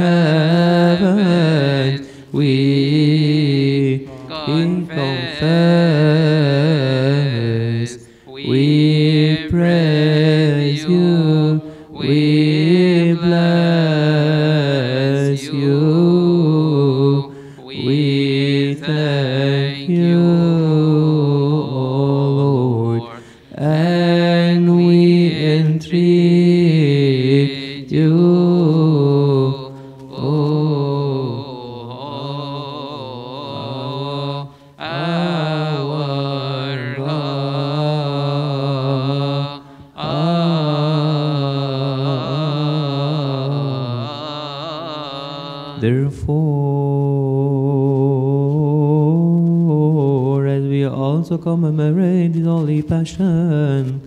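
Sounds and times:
man chanting a hymn: 0:00.0 - 0:54.0.

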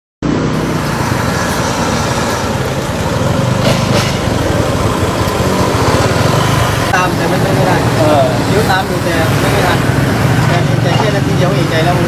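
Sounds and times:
motor scooter passing: 0:00.2 - 0:12.0
road traffic: 0:00.2 - 0:12.0.

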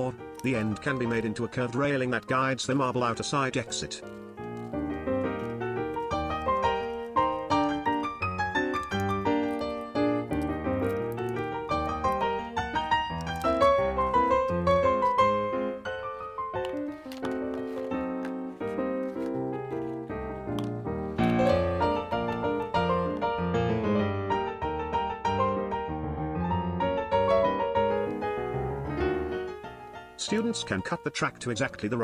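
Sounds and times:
piano music: 0:00.0 - 0:32.0.

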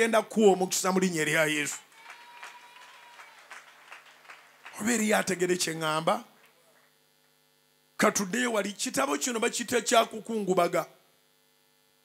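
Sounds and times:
man speaking over microphone: 0:00.0 - 0:01.8, 0:04.8 - 0:06.4, 0:08.0 - 0:11.0
faint electrical hum: 0:00.0 - 0:12.0.

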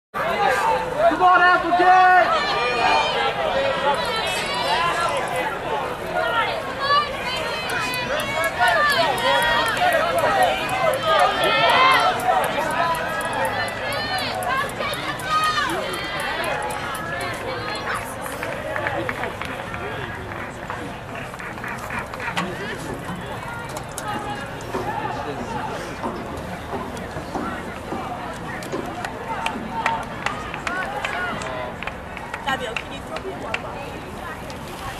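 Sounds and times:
crowd chatter: 0:00.1 - 0:34.9
people talking and calling out: 0:00.2 - 0:34.9.

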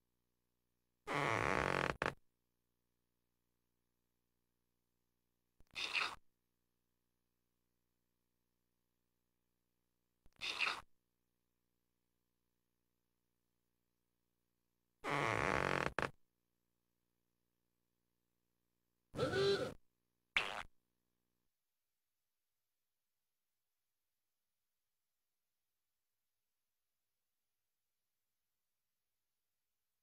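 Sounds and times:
cartoon inflation buzzing blurt: 0:19.2 - 0:19.8.

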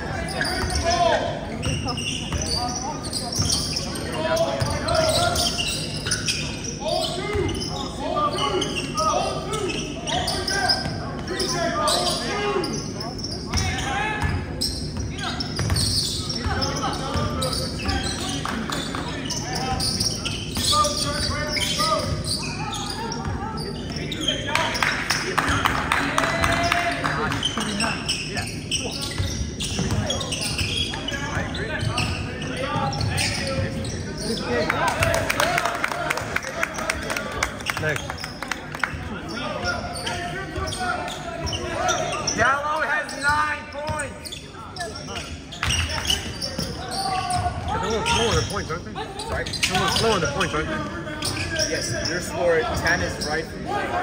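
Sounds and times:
voices in large gym: 0:00.0 - 0:54.0.

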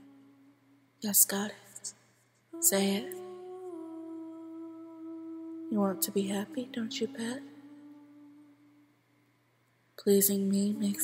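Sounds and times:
woman humming a held note: 0:00.0 - 0:00.9, 0:02.6 - 0:08.9.

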